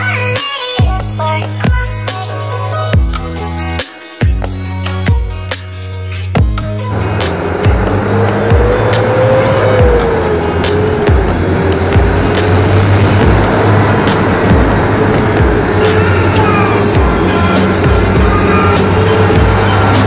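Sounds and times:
background music with a beat: 0.0s - 20.0s
city traffic road and engine noise: 0.0s - 20.0s.

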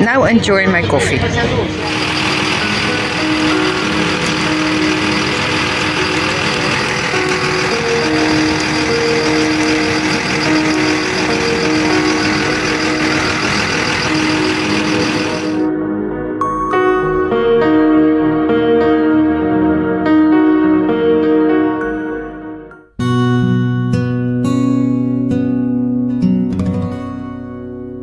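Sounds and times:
bus engine rumbling: 1.1s - 15.6s
bus hiss: 1.8s - 15.6s.

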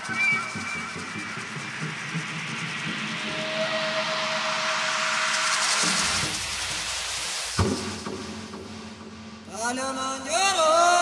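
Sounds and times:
hissing noise sweep: 0.0s - 9.7s
single percussive hit: 0.6s - 9.5s.

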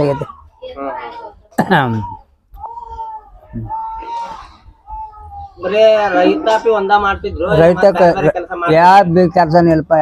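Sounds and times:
elderly man talking: 5.6s - 10.0s.

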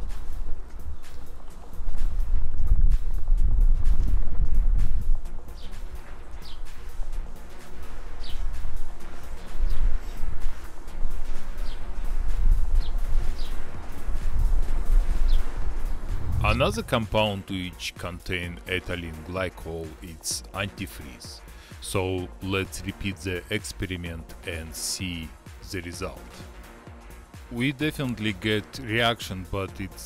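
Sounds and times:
wind rumbling on microphone: 0.0s - 17.3s
bird chirping: 5.5s - 6.9s, 8.2s - 10.3s, 11.5s - 12.0s, 12.7s - 13.7s, 15.2s - 15.6s.

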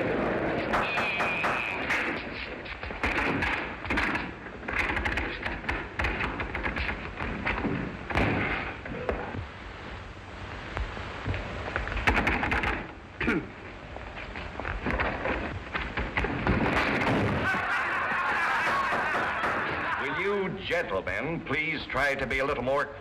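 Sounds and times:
film soundtrack hiss and clicks: 0.0s - 23.0s.

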